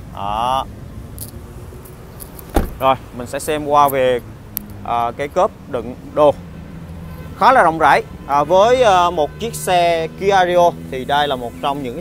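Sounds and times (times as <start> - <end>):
car door shutting: 2.3 - 3.0.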